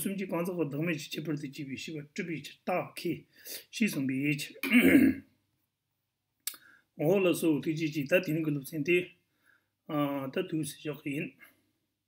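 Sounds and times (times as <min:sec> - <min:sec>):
man speaking: 0:00.0 - 0:05.2, 0:07.0 - 0:09.2, 0:09.9 - 0:11.5.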